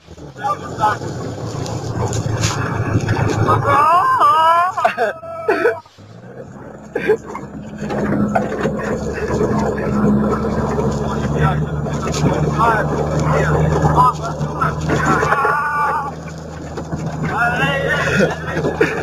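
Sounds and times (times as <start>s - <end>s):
vehicle engine running: 0.0s - 19.0s
voices: 0.0s - 19.0s.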